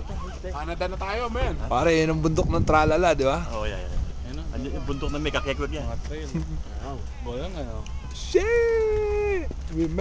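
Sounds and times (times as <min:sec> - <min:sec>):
steady low rumble: 0:00.0 - 0:10.0.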